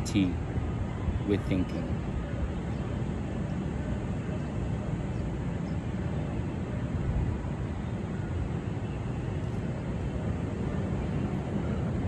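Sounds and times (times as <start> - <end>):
traffic rumble: 0.0 - 12.0
wind: 0.0 - 12.0.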